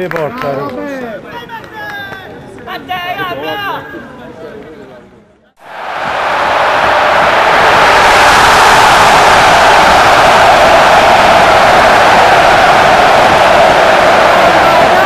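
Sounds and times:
loud steady rushing noise: 5.6 - 15.0.

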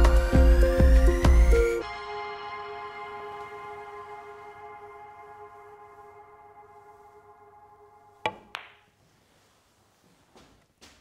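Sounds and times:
cue tip striking ball: 8.2 - 8.9
billiard balls clicking: 8.3 - 8.9.

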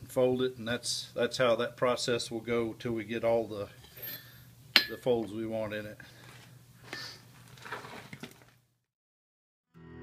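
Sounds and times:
tongs and steel clinking on anvil: 3.8 - 5.2.

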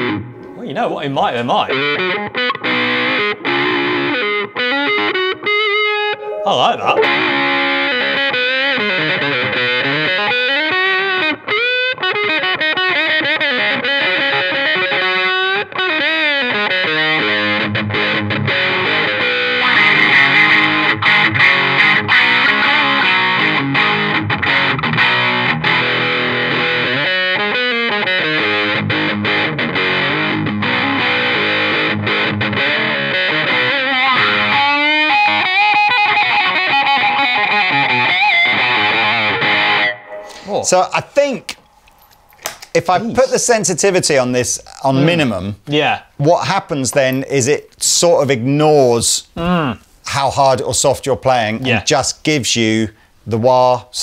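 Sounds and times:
overdriven electric guitar with wah: 0.0 - 0.6, 1.7 - 40.5.

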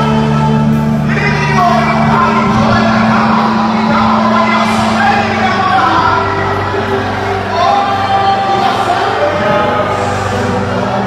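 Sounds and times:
band holding low note: 0.0 - 11.0
man singing into microphone: 0.0 - 11.0.

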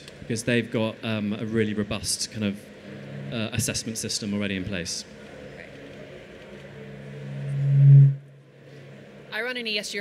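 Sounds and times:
low feedback hum: 1.8 - 5.2, 6.1 - 9.2.

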